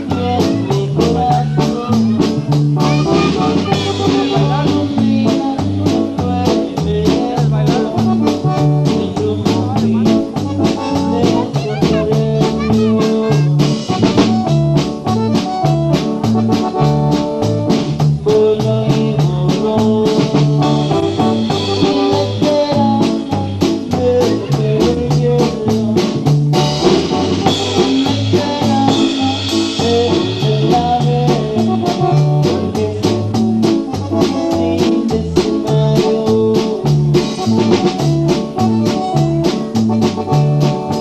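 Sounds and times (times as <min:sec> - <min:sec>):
drum kit beat: 0:00.0 - 0:41.0
electric bass: 0:00.0 - 0:41.0.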